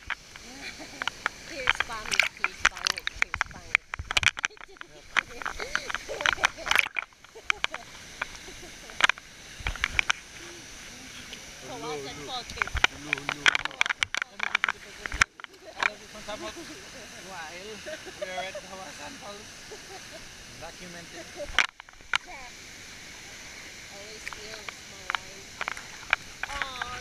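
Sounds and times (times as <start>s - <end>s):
voices: 0.0s - 27.0s
water splashing against camera: 0.0s - 27.0s.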